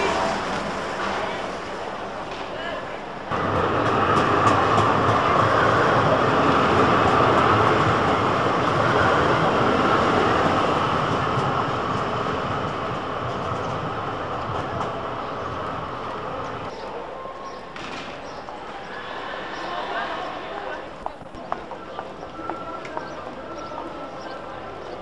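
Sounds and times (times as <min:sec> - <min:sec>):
tram wheels rumbling on rails: 0:00.0 - 0:25.0.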